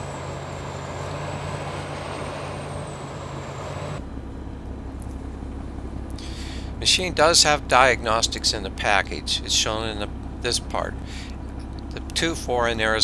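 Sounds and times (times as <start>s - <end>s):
excavator diesel engine running: 0.0s - 13.0s.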